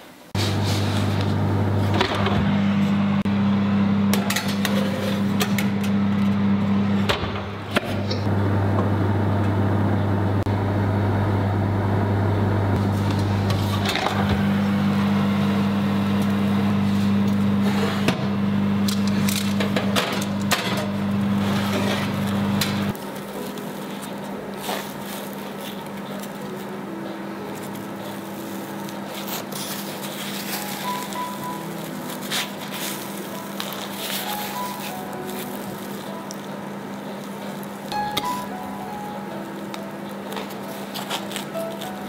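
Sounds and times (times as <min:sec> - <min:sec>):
oven fan humming: 0:00.1 - 0:42.0.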